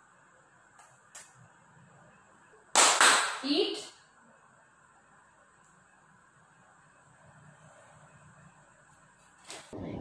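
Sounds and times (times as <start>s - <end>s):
hand clap: 2.7s - 3.4s.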